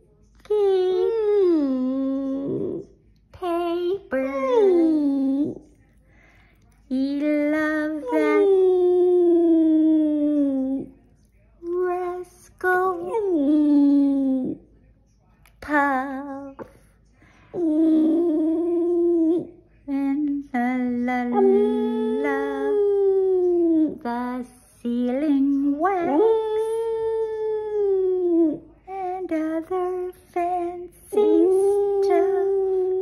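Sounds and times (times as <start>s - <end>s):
dog grumbling: 21.3s - 22.8s
dog howling: 21.3s - 23.6s.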